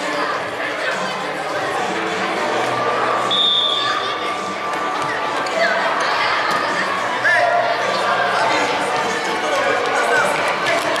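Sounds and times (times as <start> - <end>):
voices chattering in a hall: 0.0 - 11.0.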